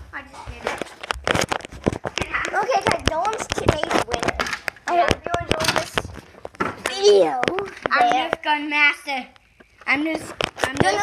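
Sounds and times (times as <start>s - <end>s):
camera handling clicks and rustles: 0.7s - 7.9s
children talking: 2.2s - 11.0s.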